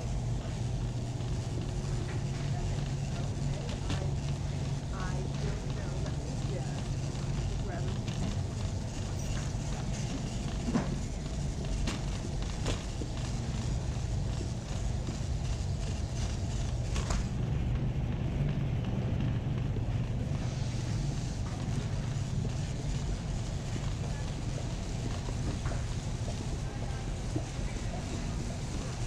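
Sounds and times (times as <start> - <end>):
shopping cart rolling on concrete: 0.0 - 19.6.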